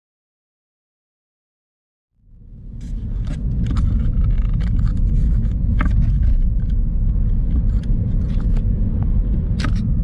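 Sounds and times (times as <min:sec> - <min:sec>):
car road and engine rumble: 0:02.2 - 0:10.0.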